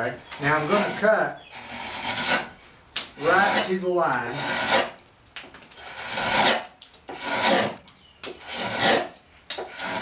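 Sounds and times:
drawknife rasping through wood: 0:01.6 - 0:02.5, 0:03.2 - 0:05.0, 0:05.8 - 0:07.8, 0:08.4 - 0:10.0.

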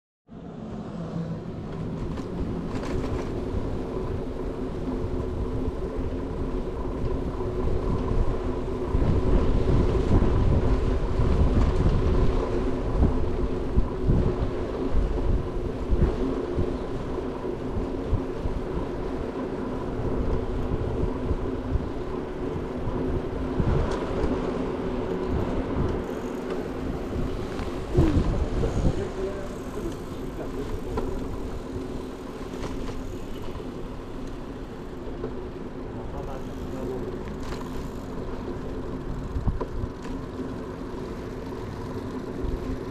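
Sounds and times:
rolling road noise: 0:00.3 - 0:42.9
wind rumbling on microphone: 0:00.4 - 0:42.9.

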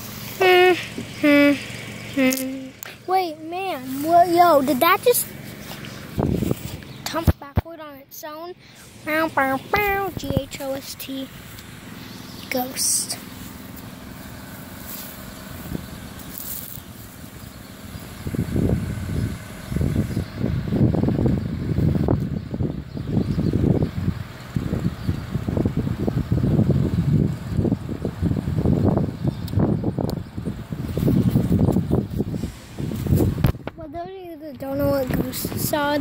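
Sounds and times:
wind buffeting microphone: 0:03.0 - 0:07.8, 0:08.8 - 0:13.4, 0:17.0 - 0:36.0.

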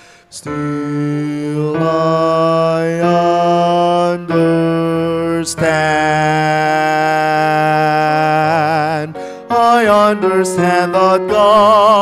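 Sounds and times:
man singing bass notes: 0:00.3 - 0:12.0.

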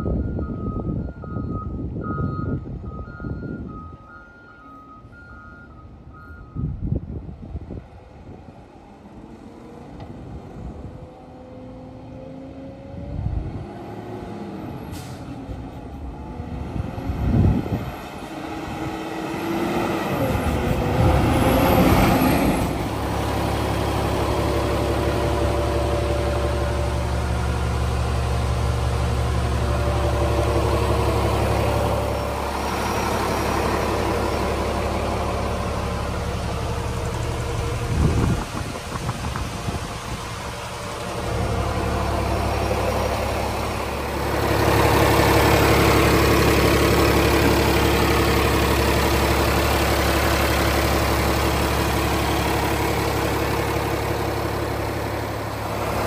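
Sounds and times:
garbage truck driving up: 0:00.0 - 0:56.0
diesel engine idling: 0:14.6 - 0:56.0.

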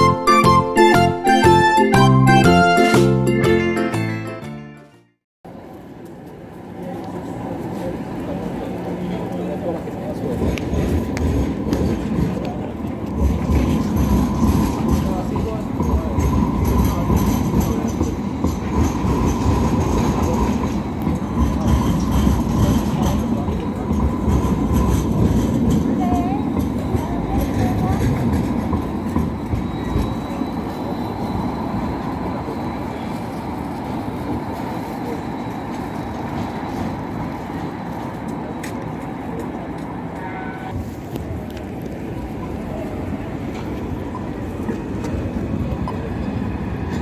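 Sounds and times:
tram wheels rumbling on rails: 0:05.5 - 0:47.0.

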